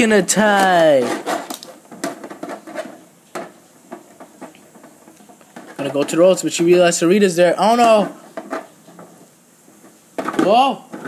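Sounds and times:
plastic figures clacking: 0.0 - 6.9.

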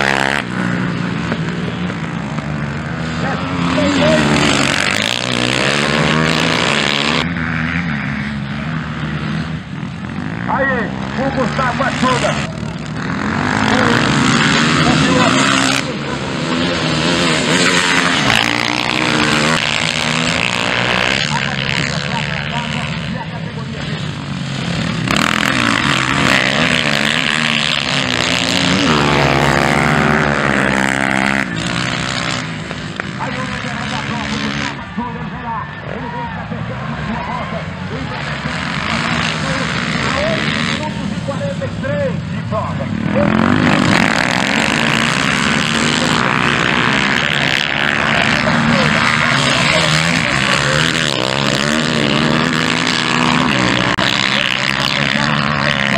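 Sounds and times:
dirt bike engines revving: 0.0 - 55.9.

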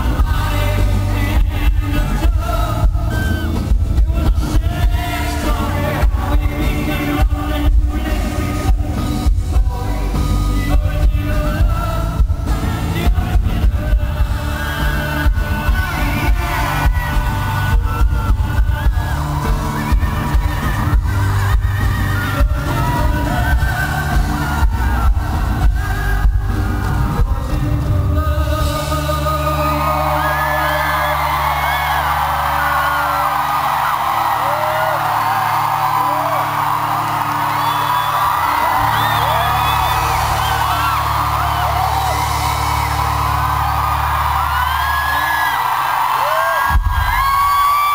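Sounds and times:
audience cheering and screaming: 0.0 - 9.3, 14.2 - 28.0, 28.6 - 47.9
rock band playing: 0.0 - 47.9.

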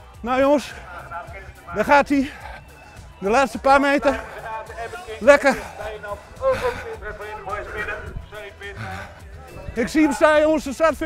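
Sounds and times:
music playing: 0.0 - 11.0
voices: 0.0 - 11.0.

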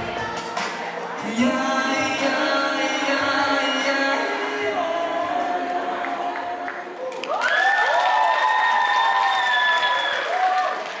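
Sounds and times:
song: 0.0 - 7.3
audience applauding: 6.0 - 11.0
high-pitched cheering shouts: 7.1 - 11.0.

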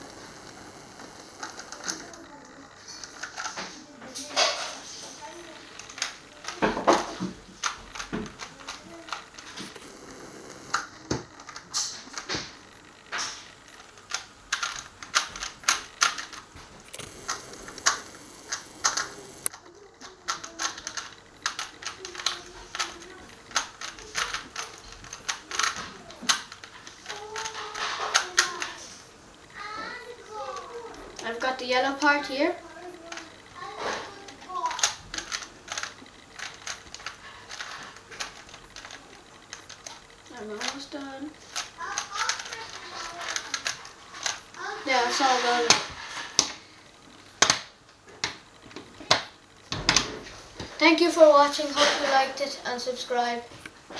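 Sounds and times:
plastic puzzle cube clicking: 1.4 - 3.6, 5.7 - 9.6, 13.2 - 16.4, 17.0 - 28.8, 34.3 - 40.0, 41.5 - 44.4.

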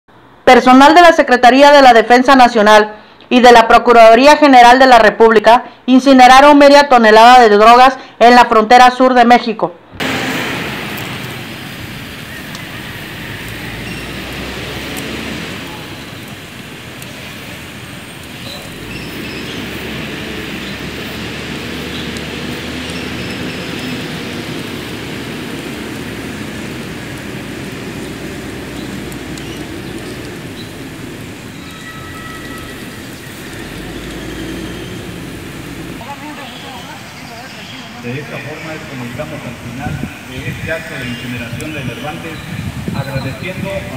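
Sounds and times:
large fire burning: 10.0 - 43.9.

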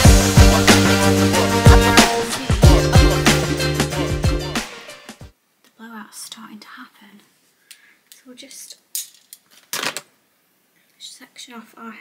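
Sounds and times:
woman speaking softly: 5.8 - 7.3, 8.2 - 8.8, 11.0 - 12.0.

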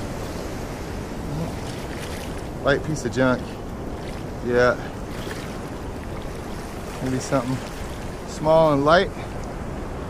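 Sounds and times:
surf waves washing on sand: 0.0 - 10.0.

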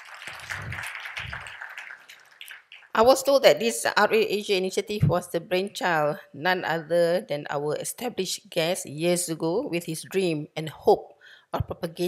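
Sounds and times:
audience applauding: 0.0 - 3.0.

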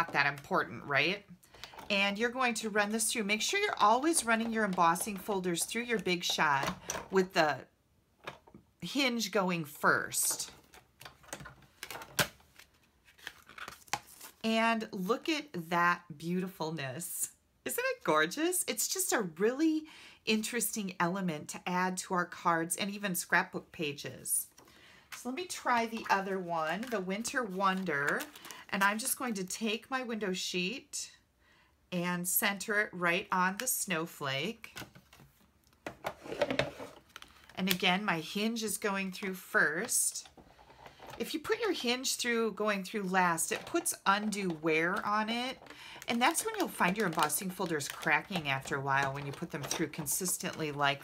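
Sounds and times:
plastic folder scraping rustle: 10.4 - 14.4, 25.6 - 28.7, 36.0 - 37.6, 40.2 - 41.3, 43.4 - 50.8.

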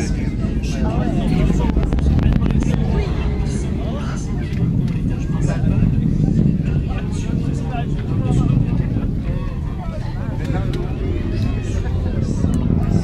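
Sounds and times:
distant rocket launch rumble: 0.0 - 13.0
rocket engine crackle: 0.0 - 13.0.

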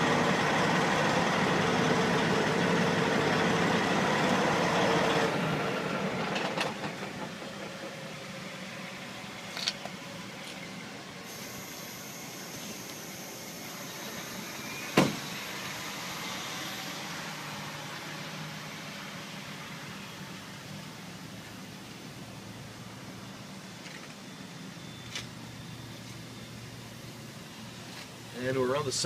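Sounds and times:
diesel truck engine idling: 0.0 - 23.7.

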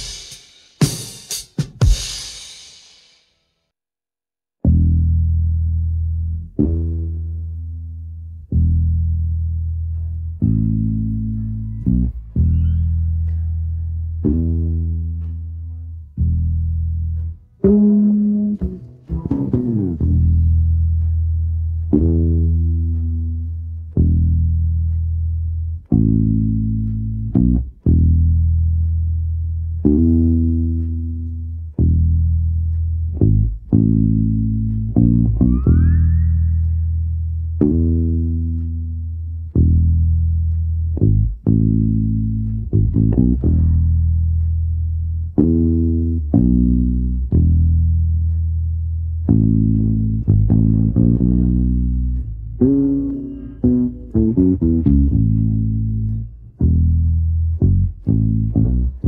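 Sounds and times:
electric bass guitar notes: 4.6 - 59.0.

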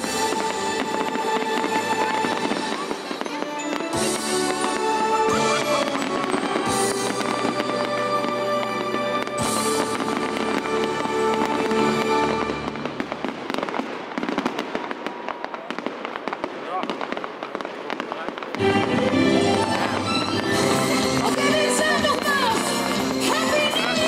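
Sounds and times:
fireworks bursting and crackling: 0.0 - 24.0.

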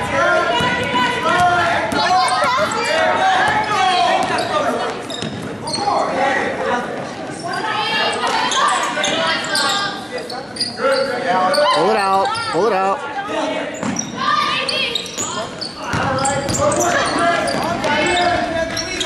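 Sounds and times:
basketball bouncing on hardwood floor: 15.9 - 16.7.

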